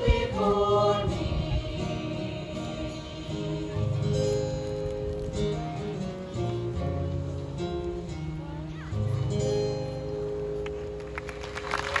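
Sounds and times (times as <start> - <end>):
choir singing with guitar and piano: 0.0 - 4.7
audience applause: 11.0 - 12.0.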